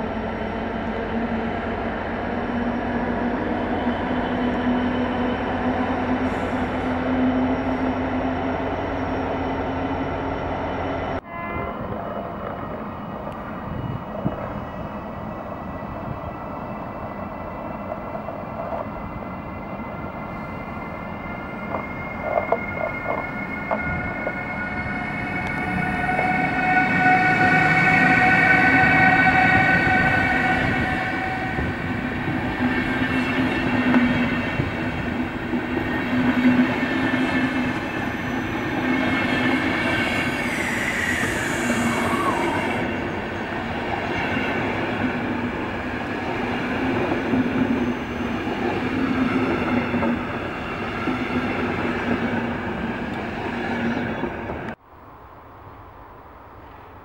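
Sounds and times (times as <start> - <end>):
train wheels rolling on rail: 0.0 - 54.8
high locomotive tones: 0.0 - 57.0.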